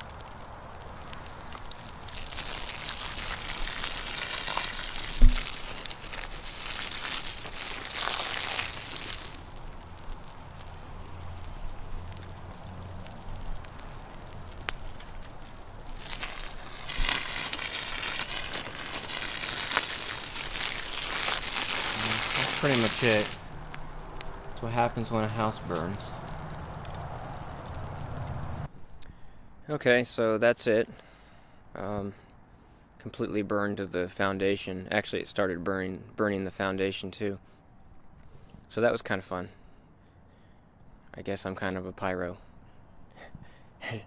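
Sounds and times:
fire crackling and hissing: 0.0 - 29.0
thump: 5.2 - 5.4.

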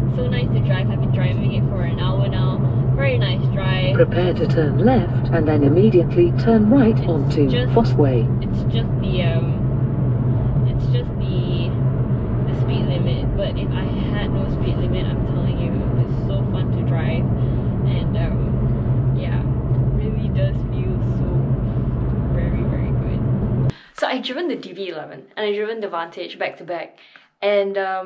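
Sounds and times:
car engine hum in cabin: 0.0 - 23.8.

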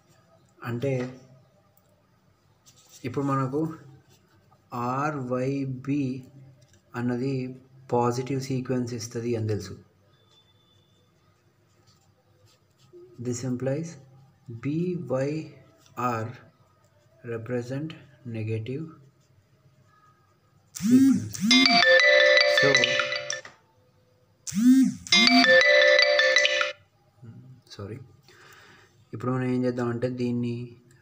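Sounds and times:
mobile phone ringtone: 20.8 - 23.5, 24.5 - 26.8.

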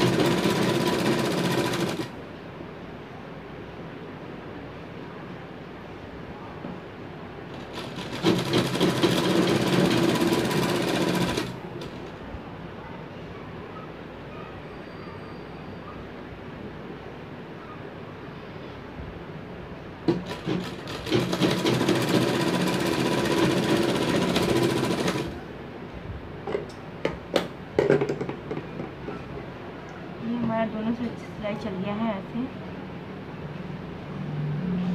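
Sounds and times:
electric sewing machine stitching: 0.0 - 2.1, 7.6 - 11.6, 20.1 - 25.4.

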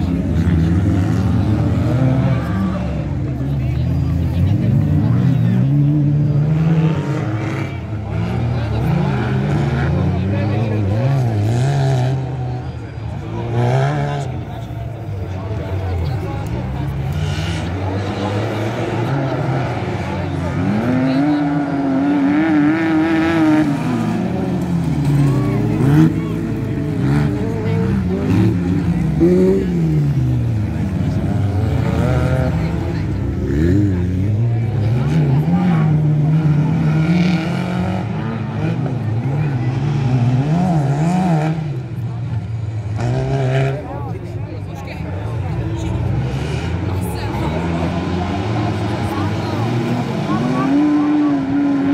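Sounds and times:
buggy engine revving hard: 0.0 - 44.3, 44.9 - 51.9.

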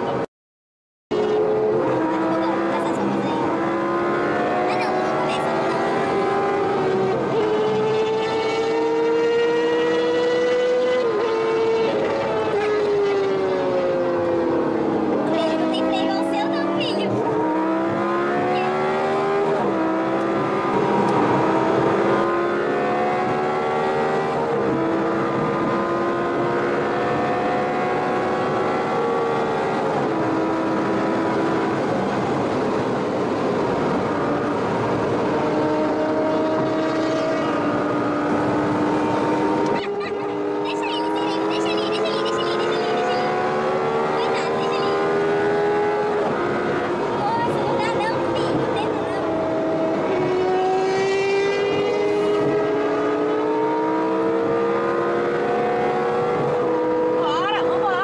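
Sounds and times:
road and wind noise: 0.0 - 0.3, 1.1 - 58.0
car engine accelerating: 1.1 - 58.0.

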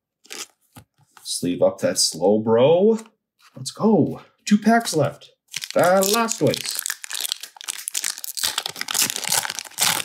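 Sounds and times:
foil wrapper crinkling: 5.5 - 10.0.

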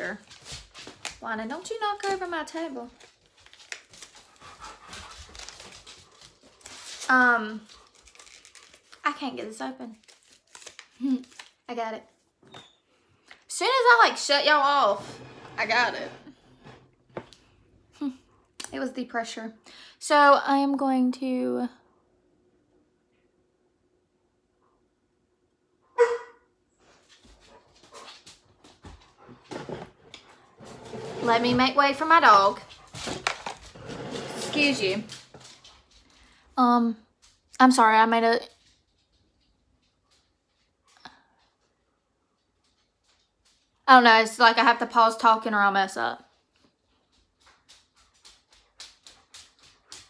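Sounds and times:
dog panting: 4.2 - 6.6
dog barking: 25.9 - 26.5.

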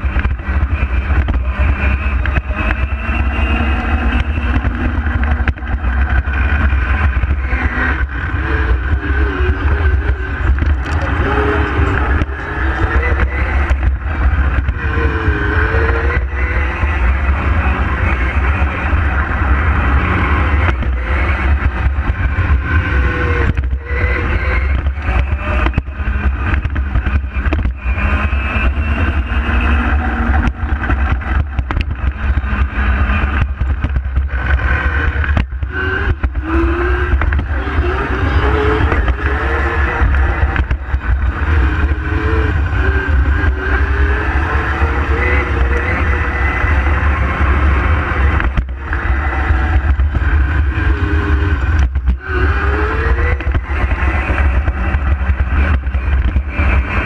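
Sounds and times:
electric kart motor whine: 0.0 - 57.0
wind rumble on microphone: 0.0 - 57.0.

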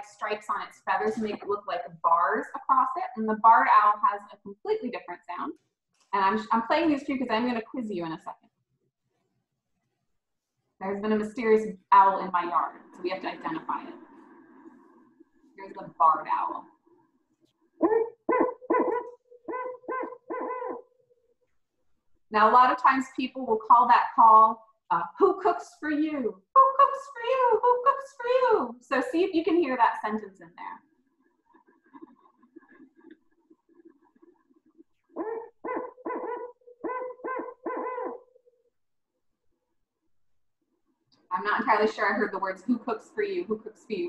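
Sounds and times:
owl hooting: 17.8 - 20.8, 35.1 - 38.4.

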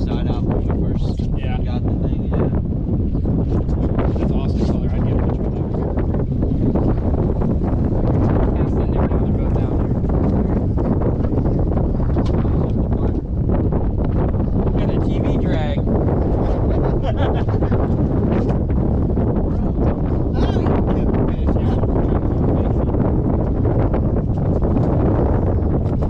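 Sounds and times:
people talking indistinctly: 0.0 - 23.7
wind buffeting microphone: 0.0 - 26.0.

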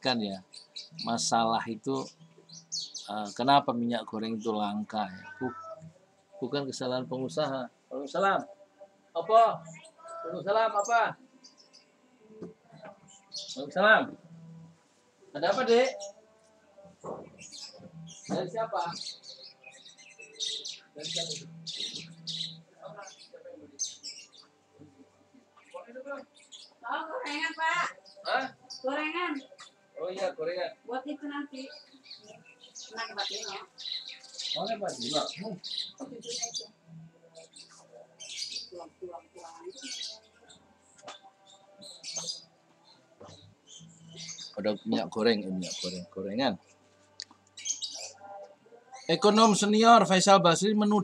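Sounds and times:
small birds chirping: 0.0 - 51.0.

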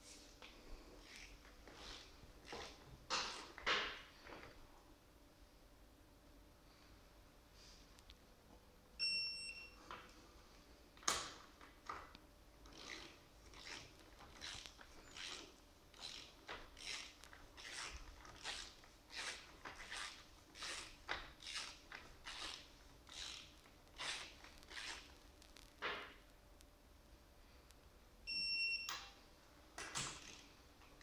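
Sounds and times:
torque wrench beep: 9.0 - 9.8, 28.3 - 29.2.

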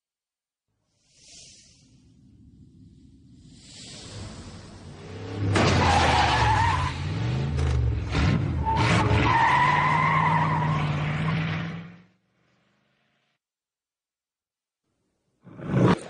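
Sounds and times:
car engine revving: 4.9 - 12.2.

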